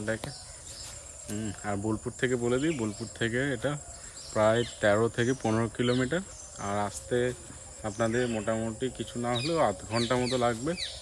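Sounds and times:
man talking: 0:00.0 - 0:00.5, 0:01.2 - 0:11.0
insects droning: 0:00.0 - 0:11.0.

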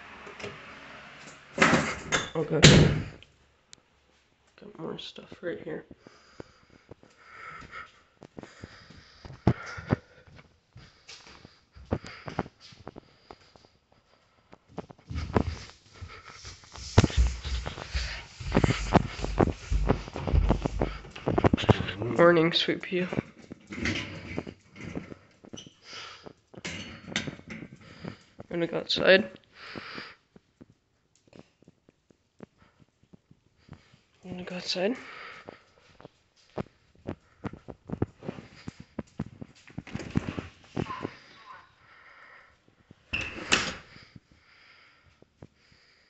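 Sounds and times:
door opening: 0:00.0 - 0:03.2
footsteps: 0:14.8 - 0:22.4
small dog moving on tile: 0:15.0 - 0:22.1
door squeaking shut: 0:43.2 - 0:43.8.

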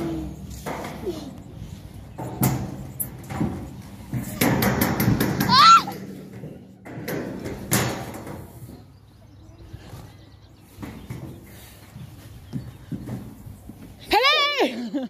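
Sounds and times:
children clambering on wooden frame: 0:00.0 - 0:08.9, 0:09.6 - 0:14.5
child squealing: 0:05.5 - 0:06.0.

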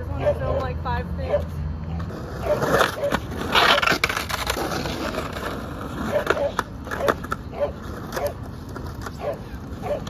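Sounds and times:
skateboard wheels rolling on pavement: 0:00.0 - 0:10.0
skateboard clacks: 0:02.0 - 0:10.0.

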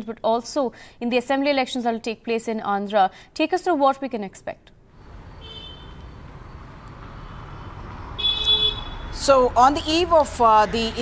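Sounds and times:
traffic rumble: 0:04.9 - 0:11.0
car horn toots: 0:05.4 - 0:06.0, 0:08.2 - 0:09.2.

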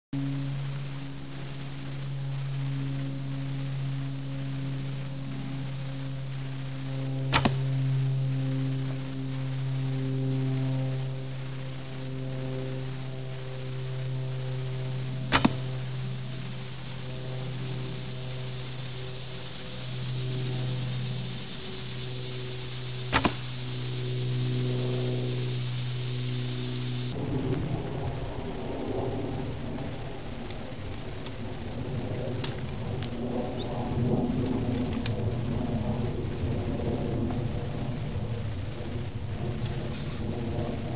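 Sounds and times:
low drone: 0:00.2 - 0:40.9
rustling through undergrowth: 0:00.4 - 0:27.2
bow shooting arrows: 0:07.3 - 0:07.8, 0:15.2 - 0:16.9, 0:22.6 - 0:24.4.

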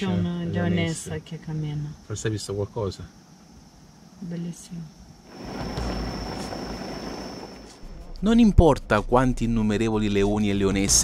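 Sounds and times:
low rumbling noise: 0:05.3 - 0:11.0.

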